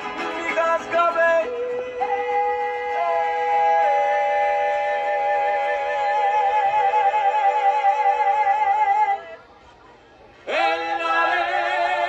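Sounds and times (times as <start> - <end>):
strummed guitars: 0.0 - 6.2
man singing long notes: 0.0 - 9.4.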